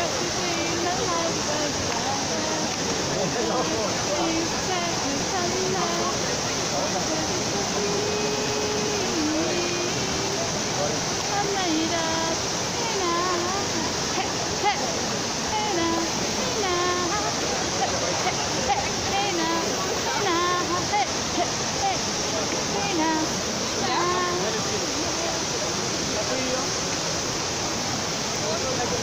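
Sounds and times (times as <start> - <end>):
people talking: 0.0 - 27.2, 28.2 - 29.0
fountain water cascading: 0.0 - 29.0
person singing drawn-out notes: 7.0 - 14.8.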